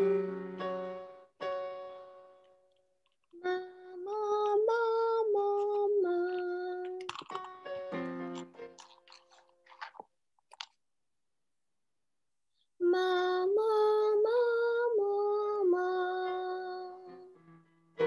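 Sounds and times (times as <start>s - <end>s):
piano chord: 0.0s - 2.4s.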